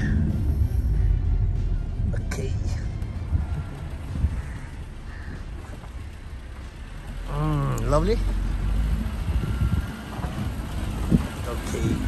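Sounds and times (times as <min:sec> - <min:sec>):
van engine and tyres rumbling: 0:00.0 - 0:12.0.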